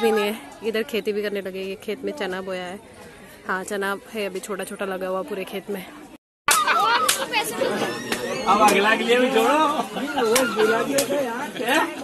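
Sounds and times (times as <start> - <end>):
people talking over each other: 0.0 - 12.0.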